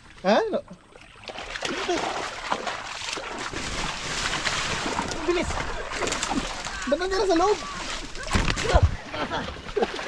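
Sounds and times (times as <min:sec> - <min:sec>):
water splashing and sloshing: 0:00.0 - 0:10.0.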